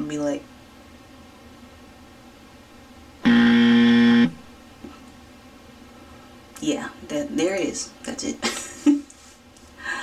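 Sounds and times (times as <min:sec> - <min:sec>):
harsh buzzer: 0:03.2 - 0:04.4.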